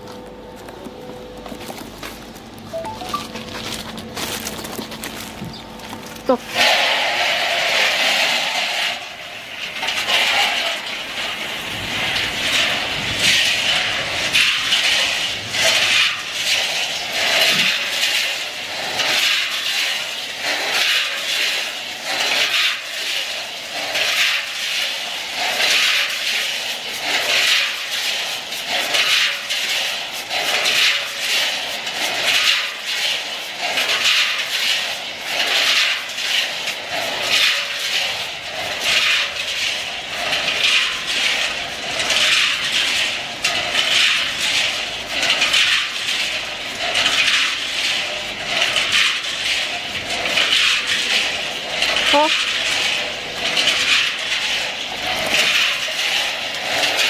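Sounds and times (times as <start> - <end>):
peanuts rattling in rotating drum: 0.0 - 57.0.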